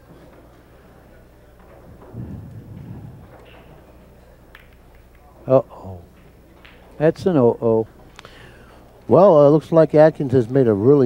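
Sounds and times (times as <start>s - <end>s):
pool cue striking ball: 1.6s - 5.2s
ball rolling on table: 1.8s - 4.1s.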